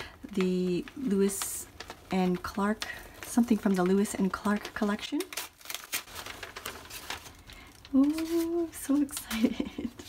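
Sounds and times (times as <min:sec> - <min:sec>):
wrapping paper rustling and crinkling: 0:00.0 - 0:10.0.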